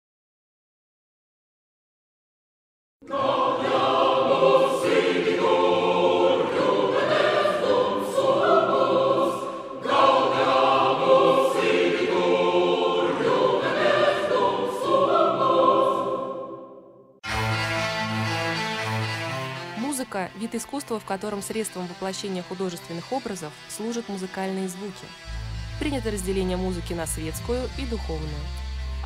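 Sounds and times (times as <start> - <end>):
choir singing sustained chords: 3.0 - 19.9, 20.7 - 29.0.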